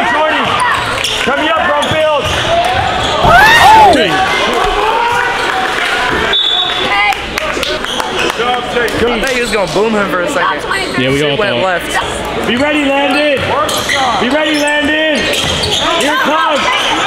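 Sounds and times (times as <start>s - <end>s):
sneakers squeaking on court: 13.4s - 17.0s.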